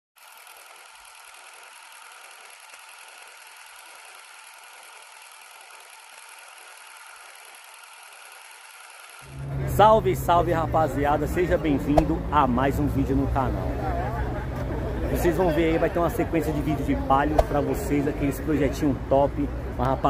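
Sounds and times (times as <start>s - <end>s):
man talking: 9.6s - 13.8s, 15.1s - 20.0s.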